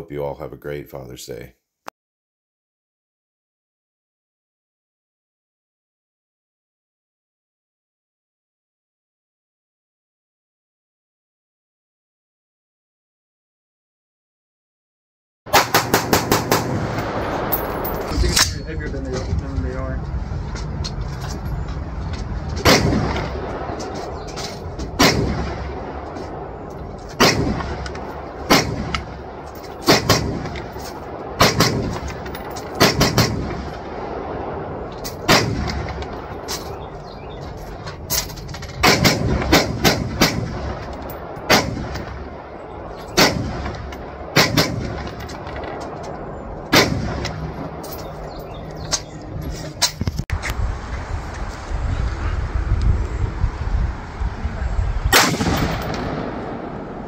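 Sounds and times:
rifle shots with echo: 15.5 - 18.6, 22.6 - 24.0, 24.9 - 26.5, 27.1 - 34.6, 35.2 - 36.5, 38.8 - 45.7, 46.7 - 47.8, 55.1 - 57.0.

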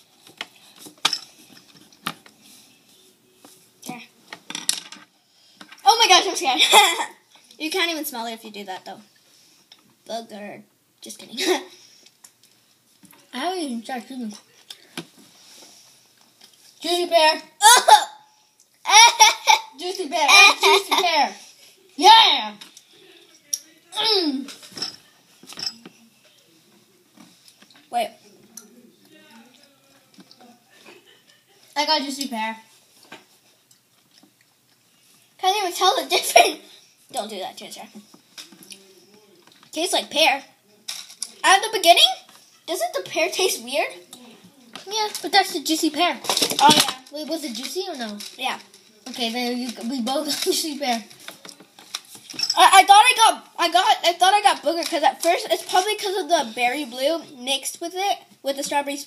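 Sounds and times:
child chewing: 14.5 - 16.8, 32.8 - 35.4
child speaking loudly: 18.9 - 21.4, 22.0 - 22.6, 52.6 - 59.0
small objects clicking and knocking: 40.9 - 41.4.

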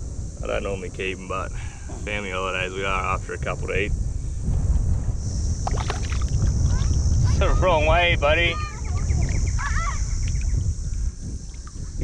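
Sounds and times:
steady high hiss: 0.0 - 12.0
wind buffeting microphone: 0.0 - 12.0
hands sloshing creek water: 5.7 - 6.5.

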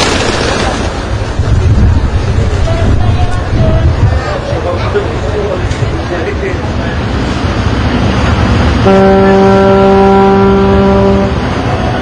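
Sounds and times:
city traffic: 0.0 - 12.0
crowd chatter: 0.6 - 12.0
ship's horn blast: 8.8 - 12.0.

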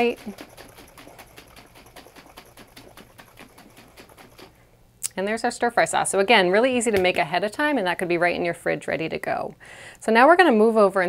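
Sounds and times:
liquid sloshing in shaken glass jar: 0.0 - 4.6.

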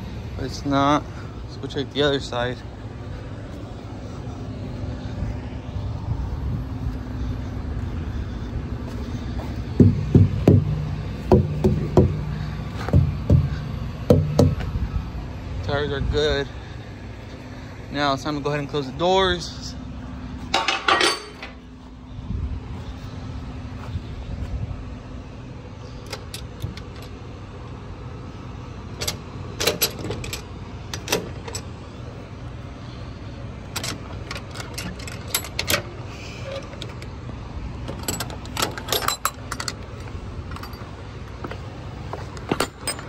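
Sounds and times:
truck engine idling: 0.0 - 43.0
keys jangling: 37.9 - 39.8.

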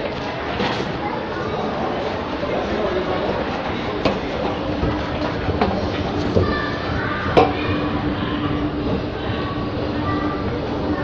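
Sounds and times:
escalator rumbling: 2.1 - 11.0.

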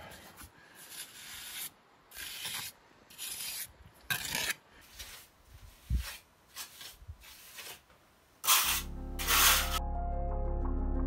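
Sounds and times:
trowel scraping wet mortar: 0.7 - 9.8.

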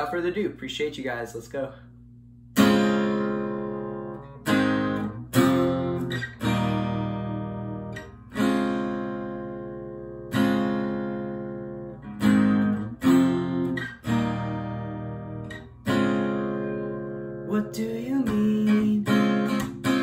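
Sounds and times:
acoustic guitar strummed chords: 2.5 - 20.0.

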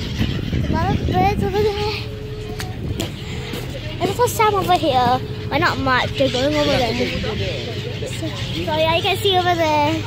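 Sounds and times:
wind on microphone: 0.0 - 3.8
faint steady hum: 0.0 - 10.0
ship engine drone: 0.0 - 10.0.

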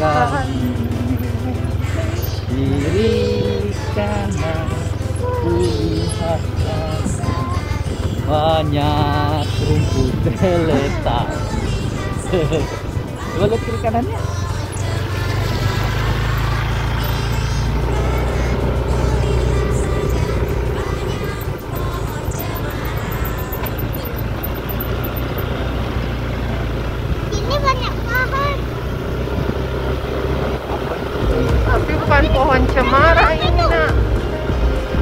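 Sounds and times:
motorcycle engine droning: 0.0 - 35.0.

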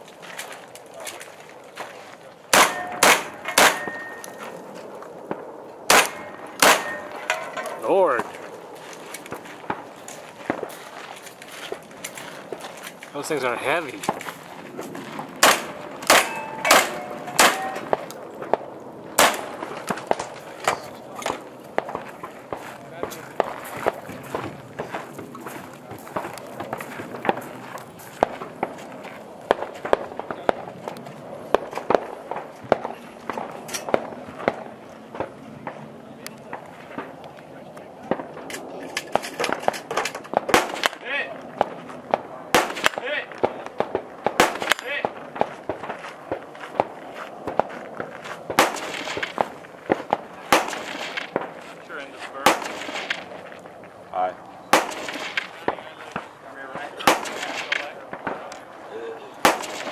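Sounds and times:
gunshots: 2.5 - 4.4, 5.2 - 8.4, 15.2 - 25.2, 38.0 - 47.7, 48.5 - 51.6, 52.4 - 53.4, 54.7 - 58.6, 59.4 - 59.9.

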